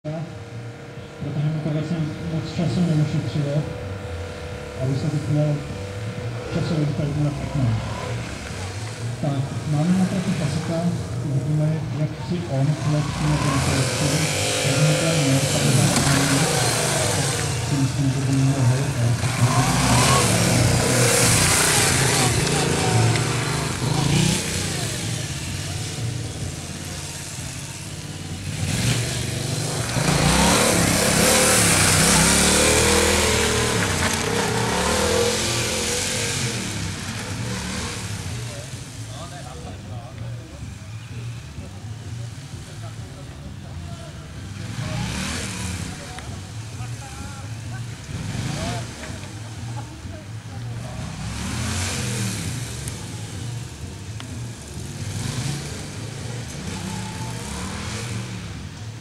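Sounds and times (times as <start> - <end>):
motorcycle engine revving: 0.0 - 59.0.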